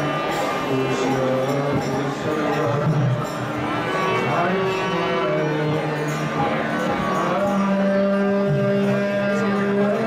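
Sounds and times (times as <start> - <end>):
devotional singing: 0.0 - 10.0.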